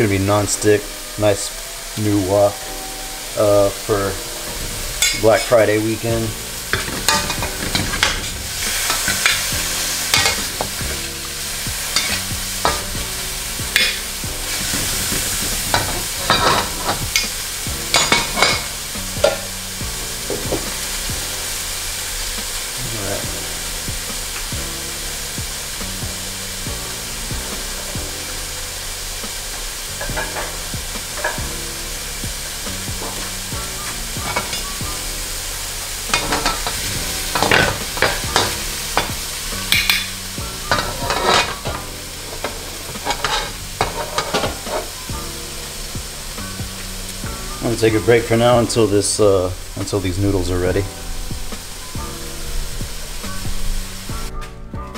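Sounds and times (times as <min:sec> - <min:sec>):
food sizzling in a wok: 0:00.0 - 0:54.9
spatula scraping and clacking on pan: 0:04.3 - 0:05.6, 0:06.5 - 0:19.5, 0:29.5 - 0:31.6, 0:32.8 - 0:34.8, 0:36.1 - 0:45.1.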